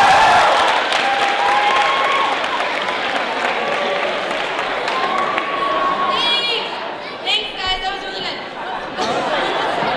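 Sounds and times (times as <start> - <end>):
voices chattering in a hall: 1.2 - 9.9.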